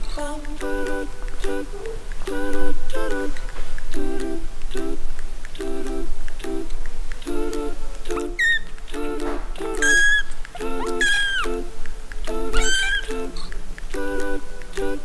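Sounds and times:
kitten mewing: 9.8s - 11.5s, 12.6s - 13.5s.

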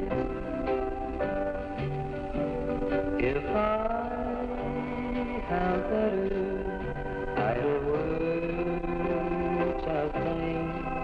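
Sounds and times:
country guitar plucking: 0.0s - 11.0s.

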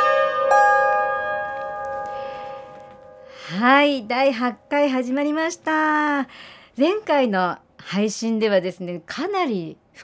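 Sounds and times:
plucked lyre strings ringing: 0.0s - 3.6s.

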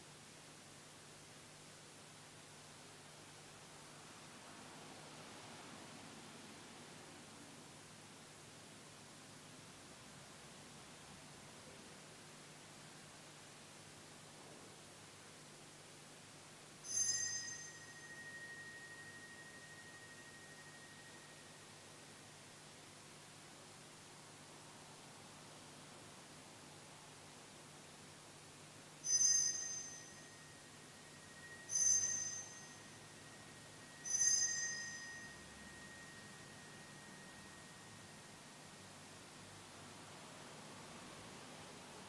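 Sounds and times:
altar bell ringing: 16.8s - 21.9s, 29.0s - 38.4s.

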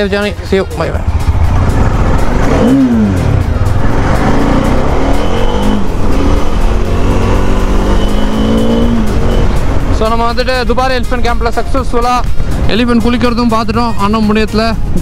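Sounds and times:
motorcycle engine accelerating: 0.9s - 10.9s.

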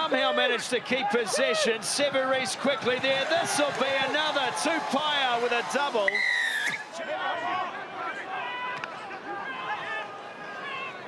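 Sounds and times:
stadium crowd murmuring: 0.0s - 11.0s
referee's whistle blast: 6.1s - 6.9s.

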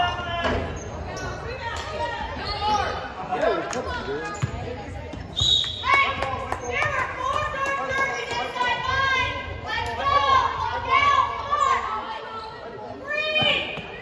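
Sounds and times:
people calling out in a gym: 0.0s - 4.4s, 5.3s - 14.0s.

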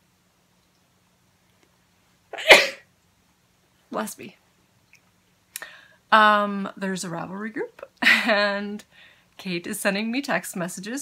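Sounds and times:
woman sneezing: 2.4s - 2.8s.

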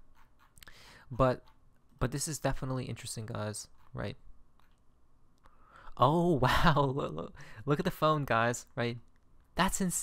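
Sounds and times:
man speaking: 1.1s - 4.2s, 5.9s - 10.0s.

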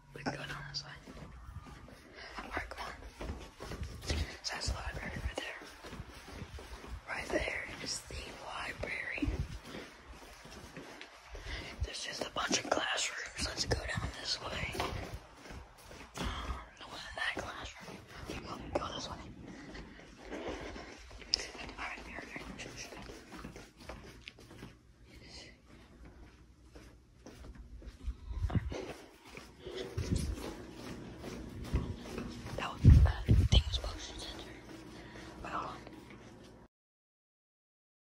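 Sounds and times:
people whispering: 0.0s - 6.0s, 6.8s - 9.9s, 11.4s - 15.2s, 16.2s - 23.2s, 32.4s - 36.1s.

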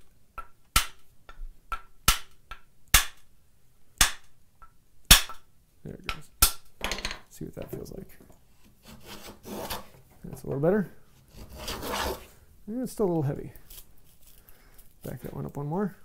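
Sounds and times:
short scrape: 8.8s - 10.0s, 11.3s - 12.4s.

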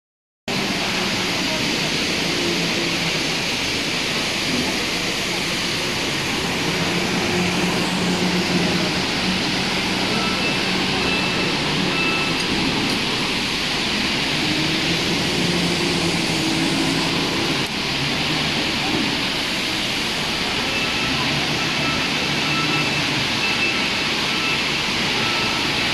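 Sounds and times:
faint voices: 0.5s - 25.9s
steady machinery noise: 0.5s - 25.9s
short faint high beeps: 10.0s - 12.5s.

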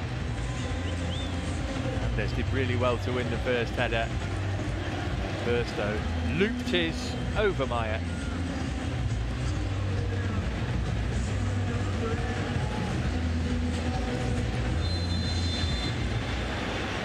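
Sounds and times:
stadium crowd roar: 0.0s - 17.0s.

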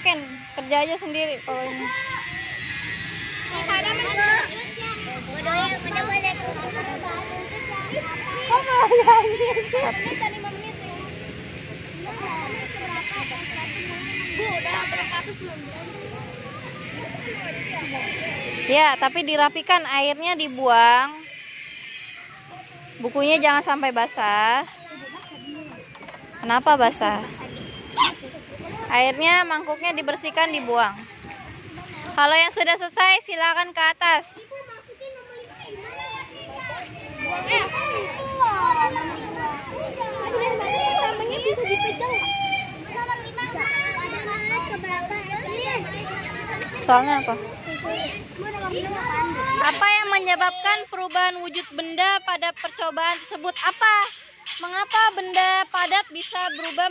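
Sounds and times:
faint children's chatter: 0.0s - 32.3s, 34.1s - 51.8s.

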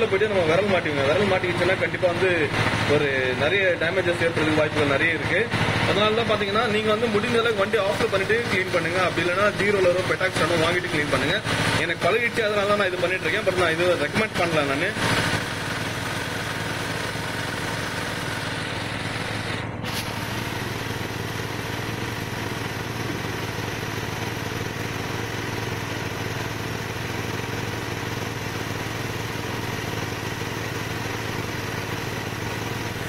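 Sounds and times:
motorcycle engine idling: 0.0s - 33.0s.

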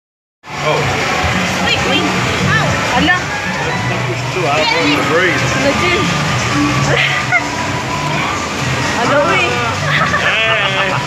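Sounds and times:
music: 0.5s - 11.0s
people talking: 0.6s - 0.9s, 1.6s - 7.4s, 9.0s - 11.0s.

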